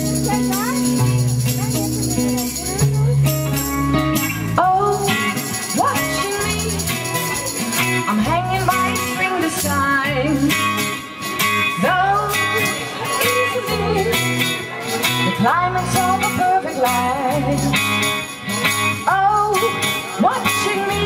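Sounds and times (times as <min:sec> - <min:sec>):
drums: 0:00.0 - 0:21.0
electric bass: 0:00.0 - 0:21.0
electric guitar: 0:00.0 - 0:21.0.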